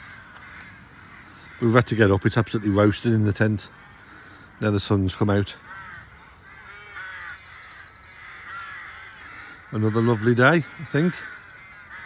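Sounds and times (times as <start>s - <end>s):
rapid high bird trill: 5.6s - 12.0s
short repeated bird calls: 5.6s - 12.0s.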